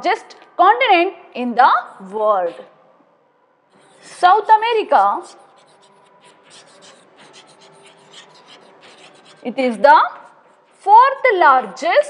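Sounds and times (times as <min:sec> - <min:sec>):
chalk scratching on chalkboard: 0:03.7 - 0:11.8.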